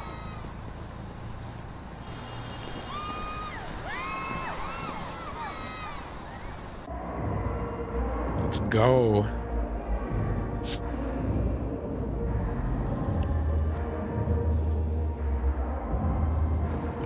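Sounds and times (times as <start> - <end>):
deep bass: 6.9 - 17.0.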